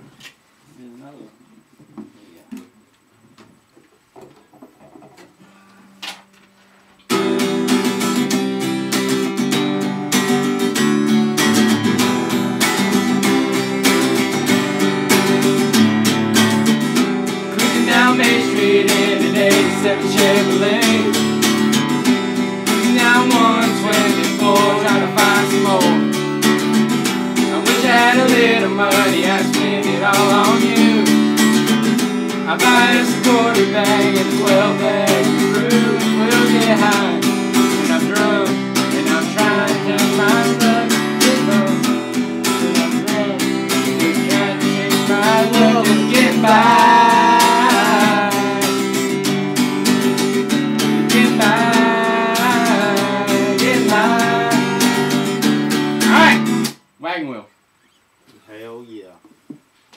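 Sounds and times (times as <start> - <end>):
acoustic guitars strumming: 4.5 - 57.0
voices singing along: 11.6 - 56.7
short vocal call: 56.0 - 56.7.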